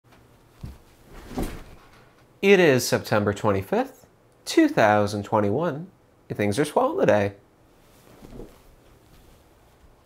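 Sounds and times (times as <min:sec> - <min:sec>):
office chair shuffling: 0:00.4 - 0:02.2, 0:07.8 - 0:10.0.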